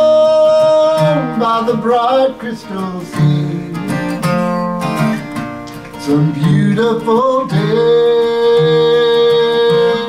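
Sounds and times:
man singing: 0.0s - 5.3s, 5.9s - 10.0s
strummed acoustic guitar: 0.0s - 10.0s.

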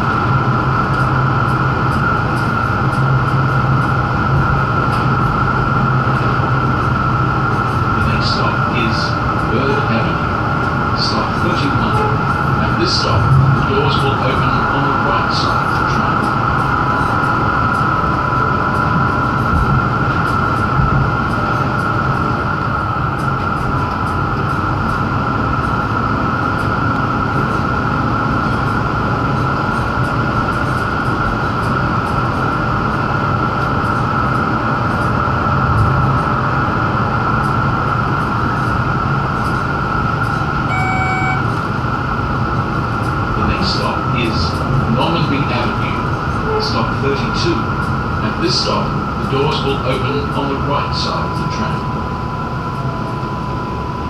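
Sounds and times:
mid-pitched hum: 0.0s - 54.0s
tram wheels rumbling: 0.0s - 54.0s
short electronic beep: 40.7s - 41.5s.

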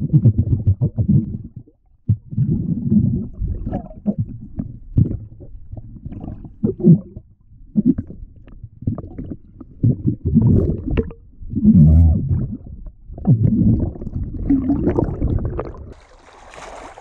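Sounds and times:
underwater rumbling and gurgling: 0.0s - 16.0s.

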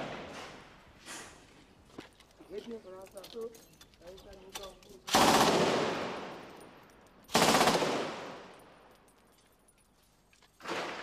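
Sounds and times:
automatic gunfire bursts: 5.1s - 6.2s, 7.3s - 8.4s
gunfire echo: 5.1s - 6.4s, 7.3s - 8.5s, 10.6s - 11.0s.

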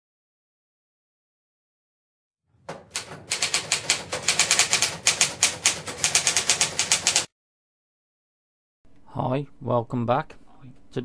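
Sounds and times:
typewriter keystrokes: 2.7s - 7.3s.

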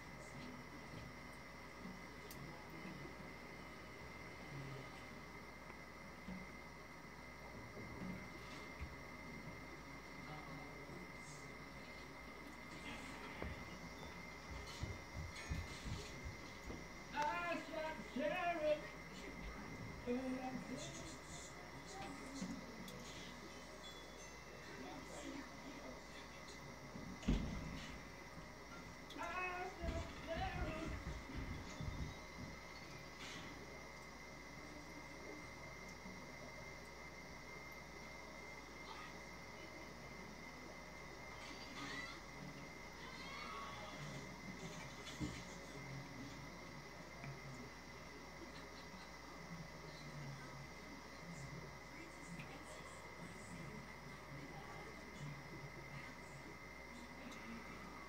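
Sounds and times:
faint room noise: 0.0s - 58.0s
low hum with high whine: 0.0s - 58.0s.

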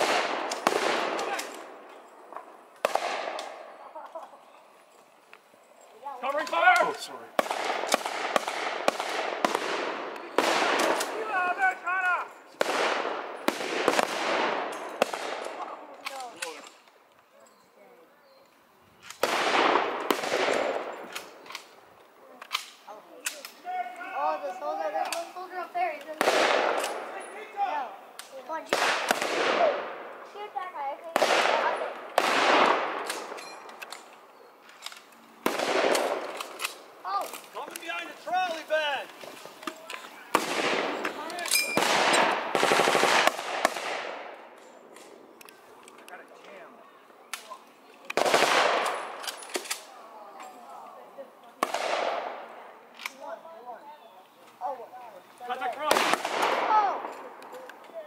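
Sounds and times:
rifle shots echoing: 0.0s - 1.9s, 2.8s - 3.8s, 6.6s - 11.6s, 12.6s - 16.5s, 19.2s - 21.7s, 25.8s - 30.5s, 31.1s - 34.0s, 35.4s - 37.0s, 40.3s - 45.2s, 48.1s - 49.9s, 51.6s - 52.6s, 55.8s - 57.4s.

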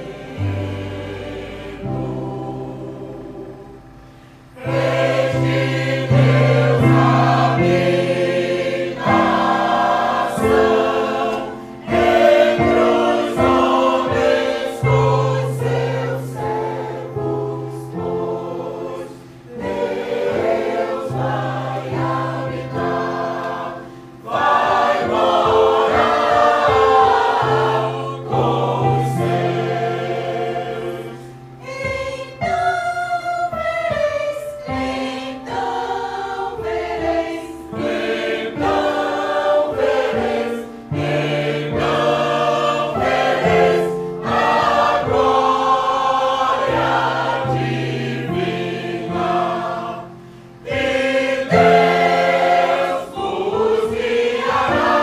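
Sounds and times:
choir singing: 0.0s - 55.0s.

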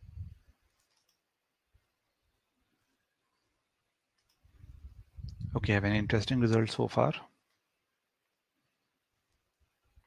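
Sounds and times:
faint click: 0.7s - 1.3s, 4.1s - 4.6s.

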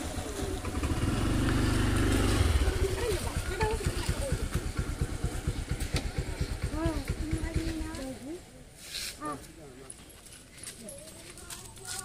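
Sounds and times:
faint people's voices: 2.4s - 12.0s.

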